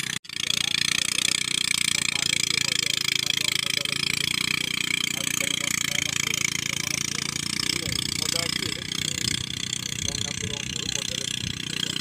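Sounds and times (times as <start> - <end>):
thresher engine running with clatter: 0.0 - 12.0.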